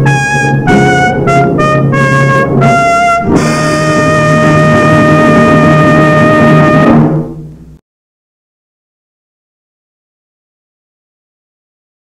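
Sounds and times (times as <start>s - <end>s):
orchestral closing chord: 0.0s - 7.7s.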